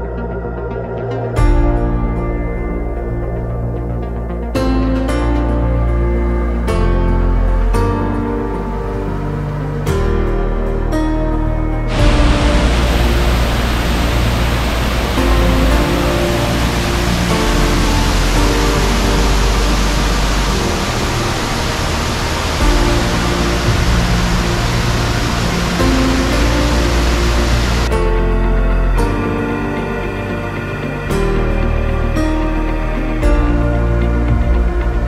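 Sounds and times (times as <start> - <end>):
background music with bass: 0.0 - 35.0
waterfall rushing: 11.8 - 35.0.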